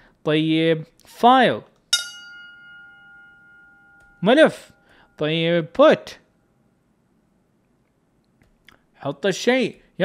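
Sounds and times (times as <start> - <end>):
bell-like chime: 2.0 - 5.2.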